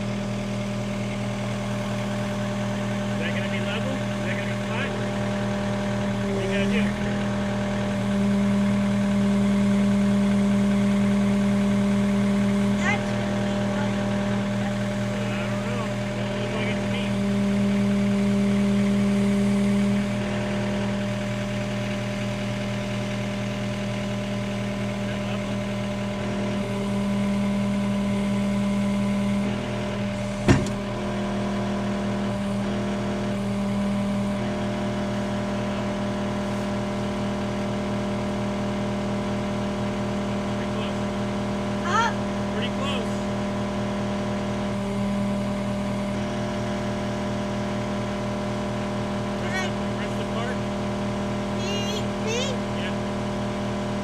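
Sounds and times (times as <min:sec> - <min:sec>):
diesel engine running: 0:00.0 - 0:54.0
sharp clunk: 0:30.4 - 0:30.8.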